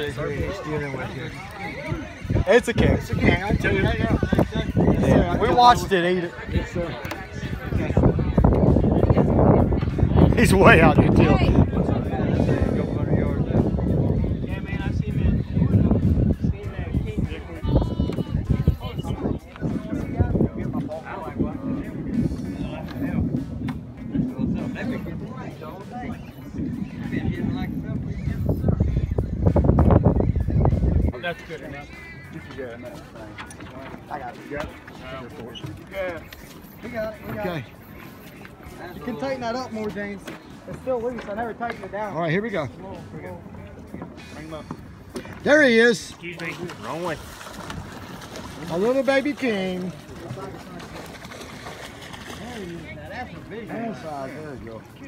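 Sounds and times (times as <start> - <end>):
faint voices: 0.0 - 55.0
indistinct background talking: 0.0 - 55.0
steady outdoor rush: 0.0 - 55.0.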